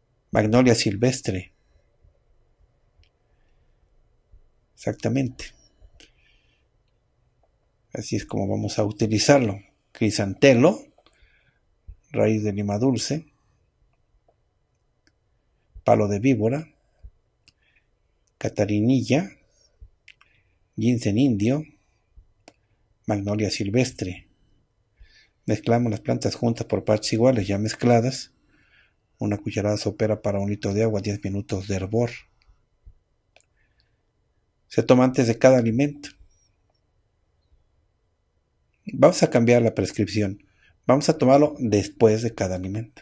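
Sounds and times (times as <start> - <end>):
man speaking: 0.3 - 1.5, 4.8 - 5.6, 7.9 - 11.0, 12.0 - 13.3, 15.8 - 16.8, 18.4 - 19.4, 20.8 - 21.8, 23.1 - 24.2, 25.5 - 28.3, 29.2 - 32.3, 34.7 - 36.2, 38.9 - 43.0
man's voice: 8.0 - 10.9, 12.1 - 13.2.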